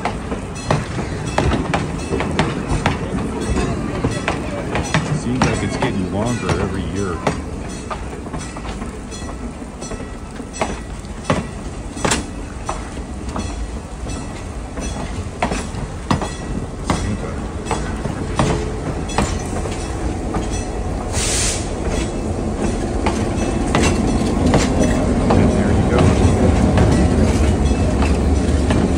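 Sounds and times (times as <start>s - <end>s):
diesel locomotive engine rumble: 0.0s - 28.9s
train wheels clicking over rail joints: 0.0s - 28.9s
brief hiss: 21.1s - 21.8s.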